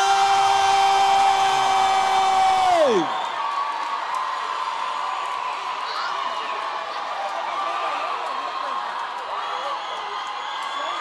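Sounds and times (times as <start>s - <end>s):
announcer long drawn-out shout: 0.0s - 3.2s
crowd cheering: 0.0s - 11.0s.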